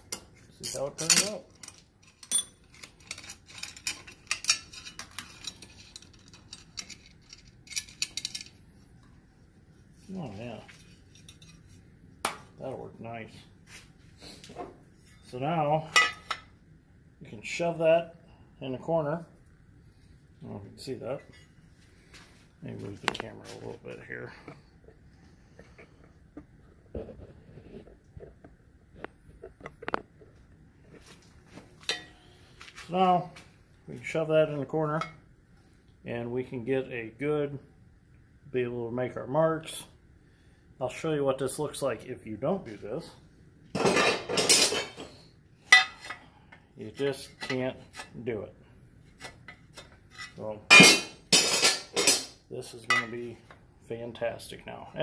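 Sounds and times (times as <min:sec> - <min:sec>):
metal tools clinking: 0:00.5 - 0:08.6, 0:31.8 - 0:32.3, 0:49.5 - 0:53.2.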